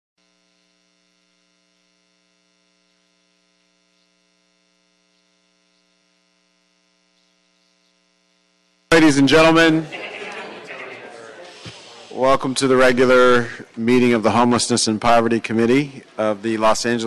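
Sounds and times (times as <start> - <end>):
faint electrical hum: 0.2 - 17.0.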